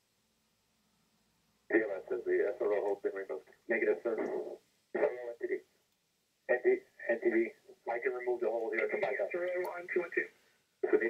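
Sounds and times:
man talking over radio: 1.7s - 5.6s, 6.5s - 11.0s.

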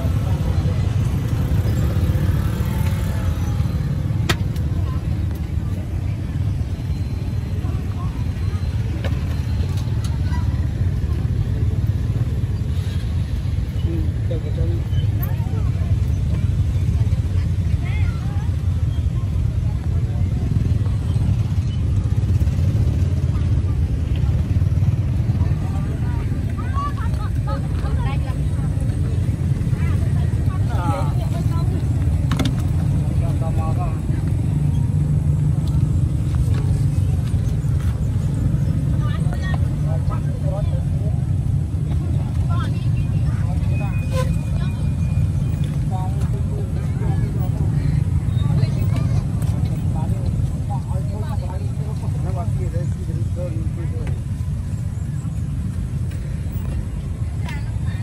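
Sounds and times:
low rumble of traffic: 0.0s - 58.0s
people's voices: 0.0s - 58.0s.

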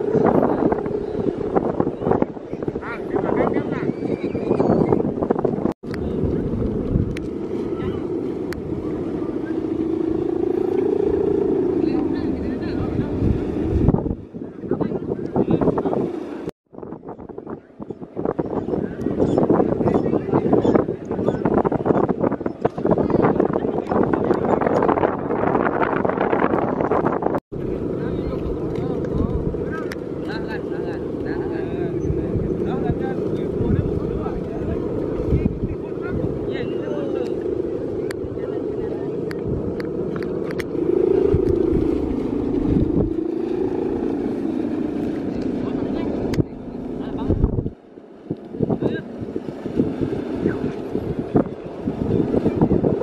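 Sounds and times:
kite hummer droning: 0.0s - 53.0s
wind buffeting microphone: 0.0s - 53.0s.

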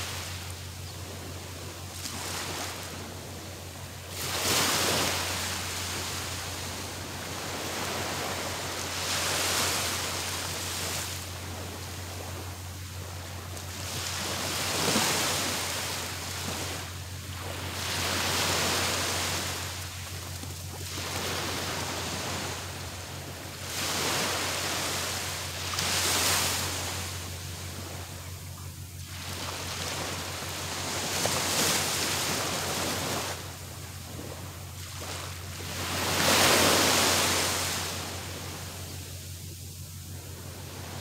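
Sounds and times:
small waves breaking on beach: 0.0s - 41.0s.

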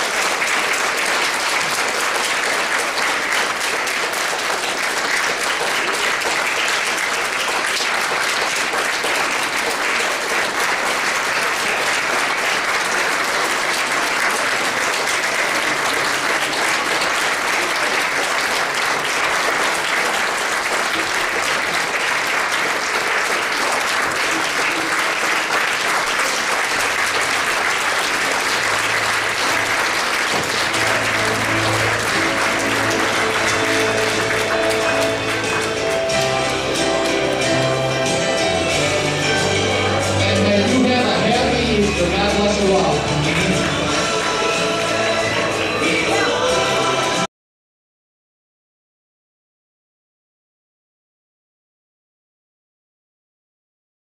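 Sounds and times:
congregation applauding: 0.0s - 47.3s.

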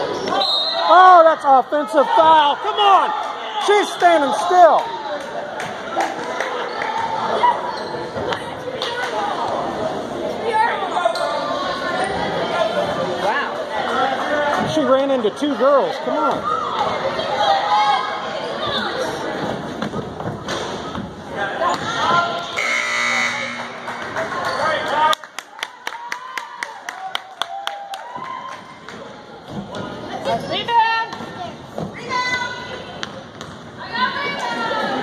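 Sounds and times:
spectators chatting and shouting: 0.0s - 35.0s
scoreboard horn: 22.6s - 24.0s.

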